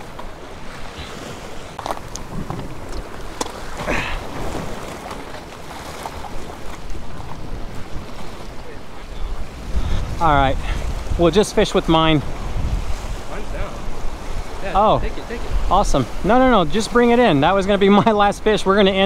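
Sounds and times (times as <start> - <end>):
waves washing against rocks: 0.0 - 19.0
wind buffeting microphone: 0.0 - 19.0.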